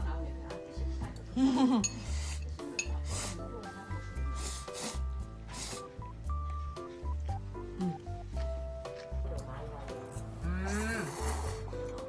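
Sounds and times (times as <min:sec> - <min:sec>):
light background music: 0:00.0 - 0:12.0
person slurping noodles: 0:04.4 - 0:05.9, 0:10.6 - 0:11.9.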